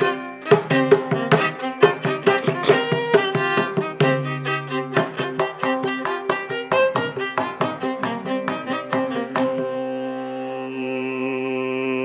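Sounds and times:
violin: 0.0 - 12.0
man singing a long note: 10.3 - 12.0.

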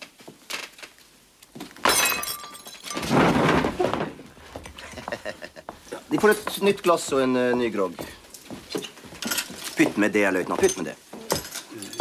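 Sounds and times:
drinking glass breaking: 1.8 - 3.2.

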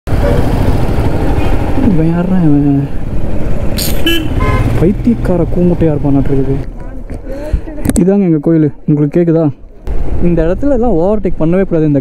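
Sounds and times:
traffic noise: 0.1 - 12.0.

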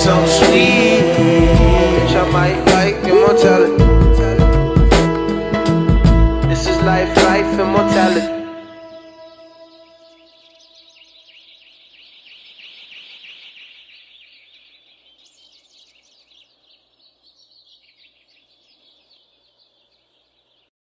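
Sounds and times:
music note: 0.0 - 10.5
small birds chirping: 8.5 - 20.7.

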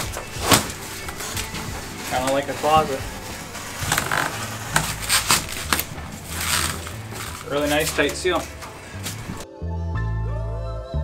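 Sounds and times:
foam board scratchy rubbing: 0.0 - 9.4.

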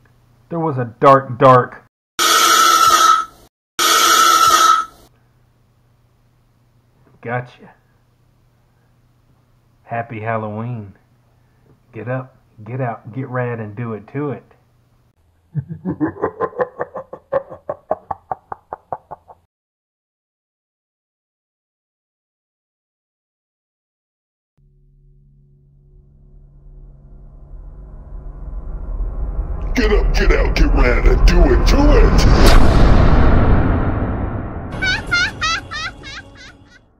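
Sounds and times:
high squeaky calls: 4.1 - 4.9, 34.8 - 36.8
man laughing rapidly: 15.5 - 19.4, 34.8 - 36.8
deep booming rumble: 25.9 - 34.8.

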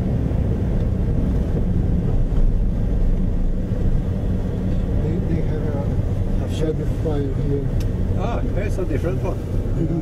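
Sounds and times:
vehicle driving on dirt road: 0.0 - 10.0.

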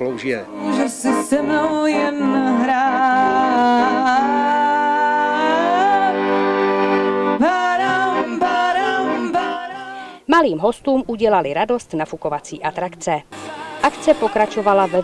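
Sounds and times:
piano accordion: 0.0 - 10.2, 13.3 - 15.0
woman singing: 0.5 - 6.6, 7.3 - 10.3, 13.2 - 15.0.

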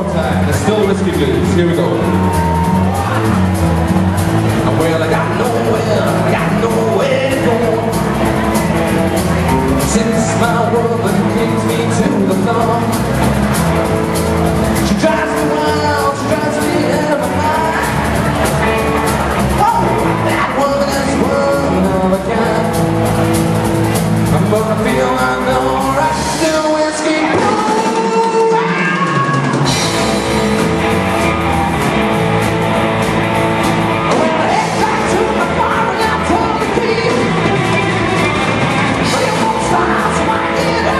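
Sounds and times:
bass guitar: 0.0 - 40.9
blues-rock band playing: 0.0 - 40.9
drums: 0.0 - 40.9
electric guitars: 0.0 - 40.9.

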